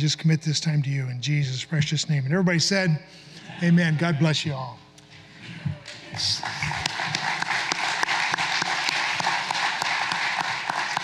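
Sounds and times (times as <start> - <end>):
crowd applauding: 5.8 - 11.0.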